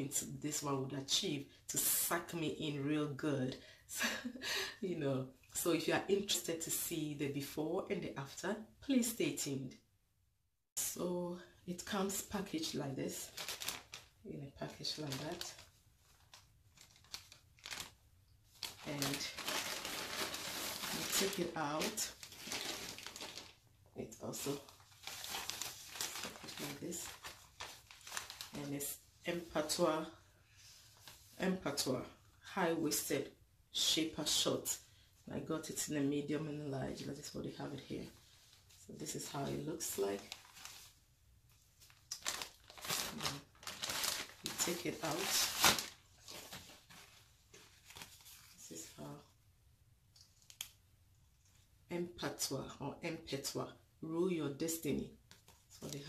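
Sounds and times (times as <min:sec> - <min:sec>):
packaging rustling and crinkling: 0:13.2 - 0:14.2, 0:14.8 - 0:23.7, 0:24.4 - 0:28.6, 0:40.1 - 0:41.0, 0:41.8 - 0:48.6.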